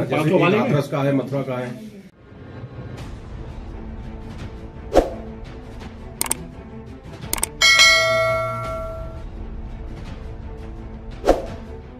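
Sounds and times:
mouse clicks: 0:07.4 - 0:07.6
notification bell ding: 0:07.4 - 0:09.2.

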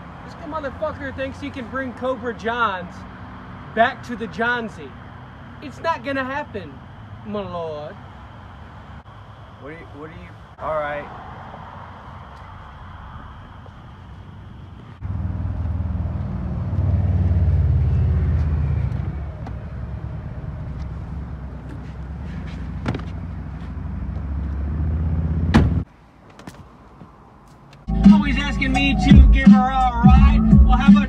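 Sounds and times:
car engine rumbling: 0:00.0 - 0:31.0.

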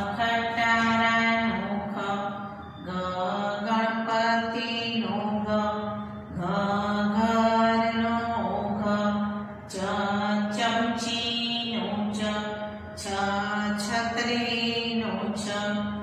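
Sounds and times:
woman chanting syllables: 0:00.0 - 0:16.0.

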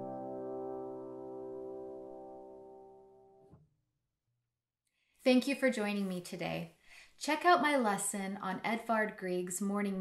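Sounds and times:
sustained piano chord: 0:00.0 - 0:03.5.

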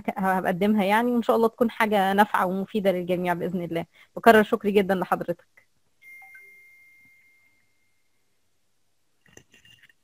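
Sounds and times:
high electronic chime: 0:06.0 - 0:08.2.

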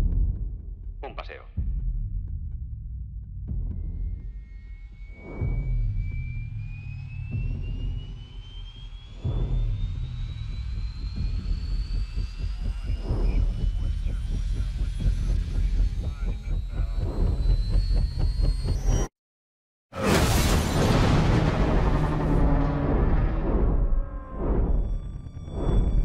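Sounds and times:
high whine rising in pitch: 0:03.8 - 0:19.1, 0:20.4 - 0:26.0
helicopter rotors and engines: 0:05.0 - 0:19.1, 0:20.8 - 0:26.0.

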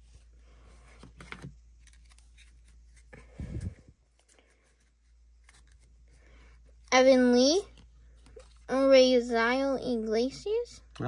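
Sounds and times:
cards being flipped through: 0:00.1 - 0:06.9, 0:07.6 - 0:08.7.

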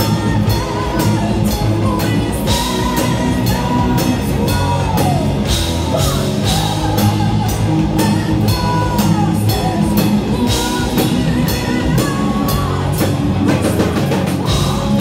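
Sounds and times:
distorted electric guitars: 0:00.0 - 0:15.0
drums: 0:00.0 - 0:15.0.

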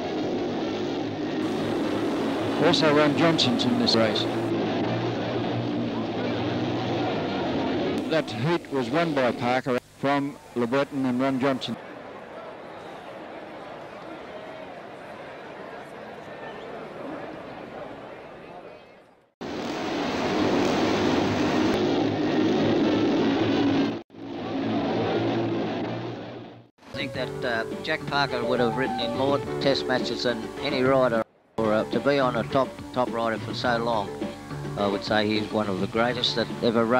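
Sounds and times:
motorcycle engines racing: 0:00.0 - 0:09.6.

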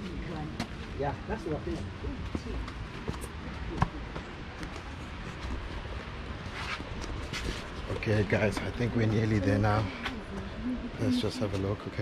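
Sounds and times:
footsteps on a path: 0:01.7 - 0:10.5
faint voices: 0:07.8 - 0:12.0.

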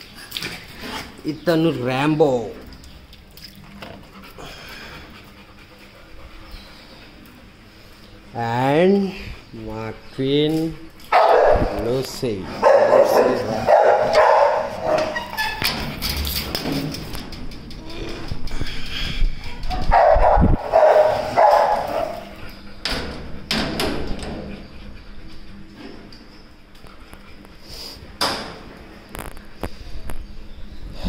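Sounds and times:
dog barking: 0:11.1 - 0:11.8, 0:12.6 - 0:15.2, 0:19.9 - 0:22.3.

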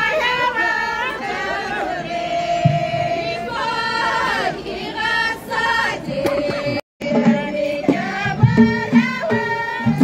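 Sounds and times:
chorus of voices singing: 0:00.0 - 0:10.0.

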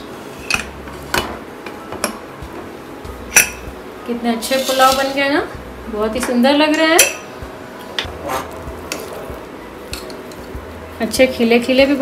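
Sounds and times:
spatula scraping metal pot: 0:04.4 - 0:05.2.

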